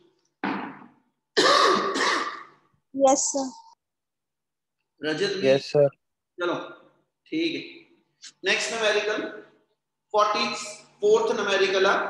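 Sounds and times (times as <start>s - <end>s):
person coughing: 1.4s - 2.6s.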